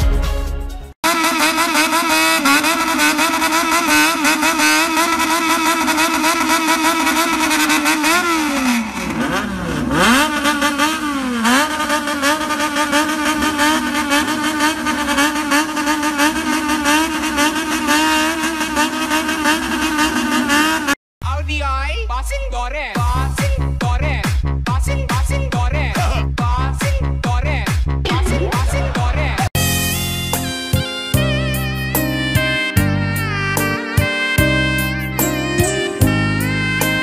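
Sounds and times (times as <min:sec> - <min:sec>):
motorcycle engines revving: 0:01.1 - 0:21.0, 0:28.0 - 0:29.5.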